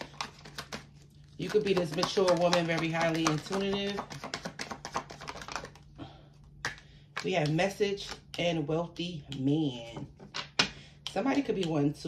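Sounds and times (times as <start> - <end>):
cards being shuffled: 0.0 - 5.9.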